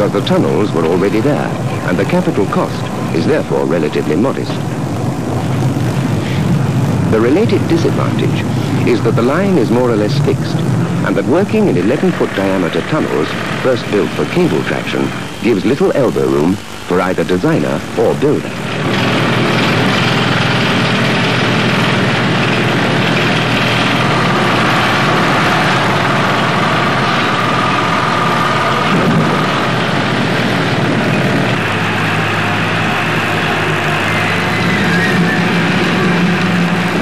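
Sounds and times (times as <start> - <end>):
heavy engine humming: 0.0 - 37.0.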